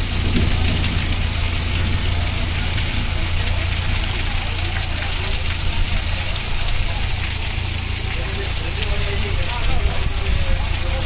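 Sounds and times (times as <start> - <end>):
constant low rumble: 0.0 - 11.0
rain falling on street: 0.0 - 11.0.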